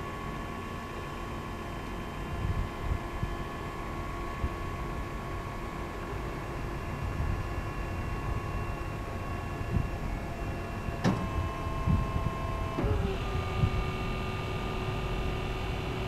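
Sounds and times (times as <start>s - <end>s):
electric motor whine: 8.2s - 16.0s.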